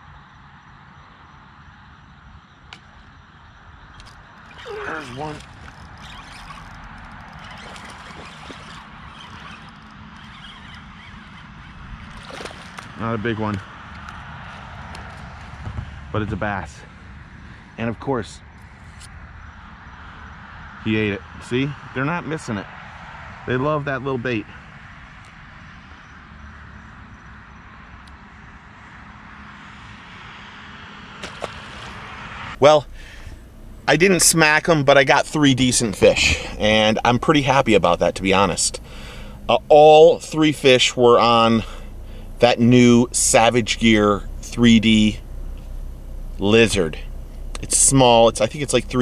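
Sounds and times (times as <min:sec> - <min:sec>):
low rumble: 0:32.0 - 0:49.0.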